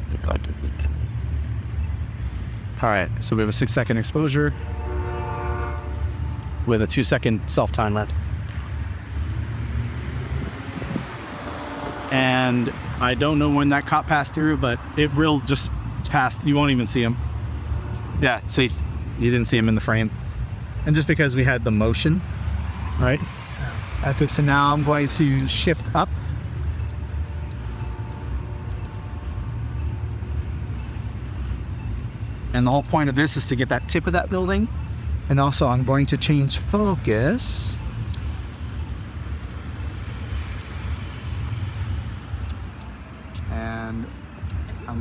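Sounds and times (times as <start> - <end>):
city street traffic rumble: 0.0 - 45.0
faint vehicle engine hum: 0.0 - 45.0
car driving past: 8.8 - 13.1
wind noise on microphone: 9.8 - 12.1.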